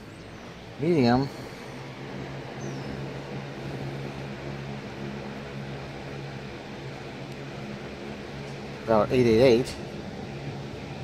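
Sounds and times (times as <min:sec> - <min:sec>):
box fan running: 0:00.0 - 0:11.0.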